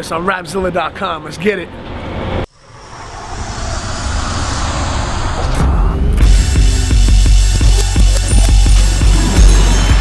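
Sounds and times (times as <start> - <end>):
rising whoosh: 1.9 - 7.2
intro music with deep bass: 5.4 - 10.0.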